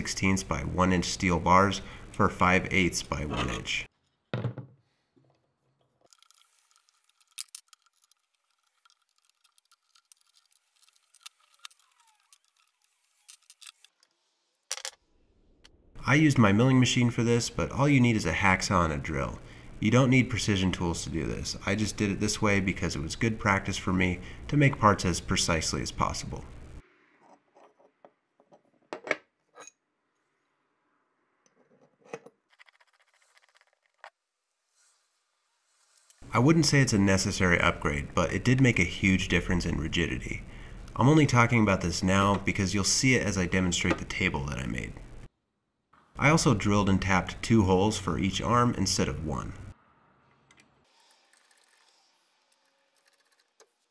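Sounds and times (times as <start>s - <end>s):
metal parts clicking and tapping: 5.9s - 14.0s.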